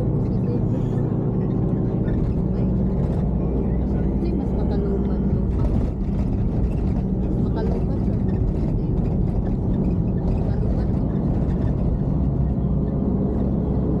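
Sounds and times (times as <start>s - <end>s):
indistinct voices: 0.0s - 12.9s
van road and engine rumble: 0.0s - 14.0s.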